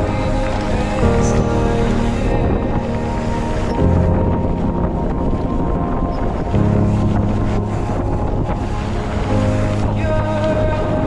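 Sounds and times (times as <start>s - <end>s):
music of held low notes: 0.0s - 11.0s
wind buffeting microphone: 0.0s - 11.0s.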